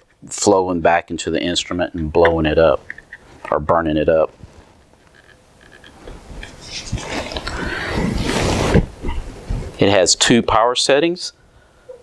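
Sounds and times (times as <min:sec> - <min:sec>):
microphone handling rustling: 0:04.3 - 0:09.9.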